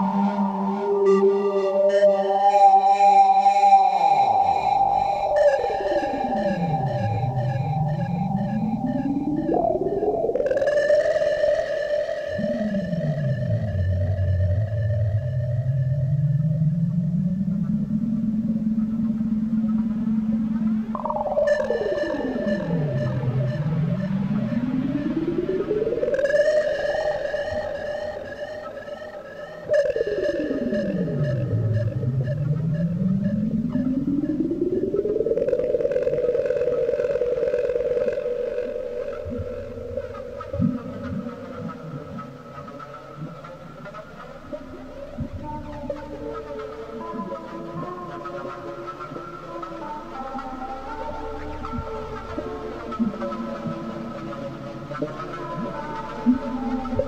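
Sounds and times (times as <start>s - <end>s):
sweeping synth tone: 0.0s - 57.0s.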